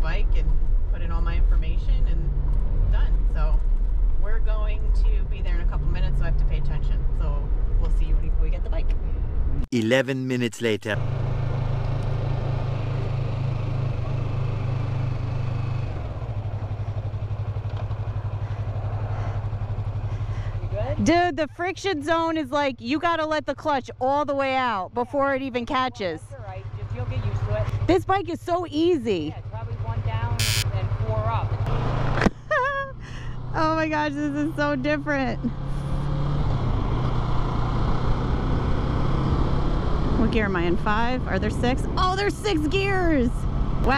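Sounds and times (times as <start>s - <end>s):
person talking: 9.7s - 11.0s
motorcycle engine running: 11.0s - 43.9s.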